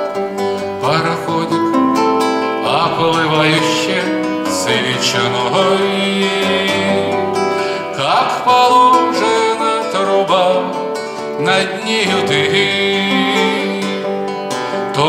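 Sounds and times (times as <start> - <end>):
classical guitar: 0.0 - 15.0
man singing: 0.8 - 15.0.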